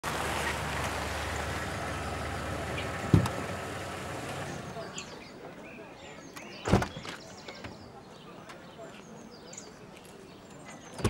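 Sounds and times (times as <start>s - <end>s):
car engine running: 0.0s - 4.9s
sharp thump: 3.1s - 3.4s.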